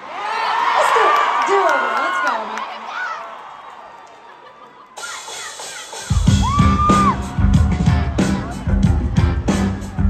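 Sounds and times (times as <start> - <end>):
high shouts: 0.0 - 3.9, 5.0 - 8.8
crowd noise: 0.0 - 10.0
live rock band playing: 5.0 - 10.0.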